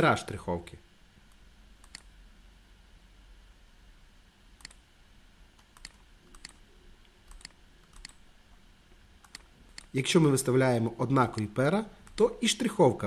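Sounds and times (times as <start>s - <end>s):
faint low hum: 0.0s - 13.0s
computer mouse clicking: 1.3s - 2.1s, 4.6s - 4.8s, 5.6s - 6.6s, 7.2s - 8.2s, 9.2s - 10.0s, 11.3s - 12.3s.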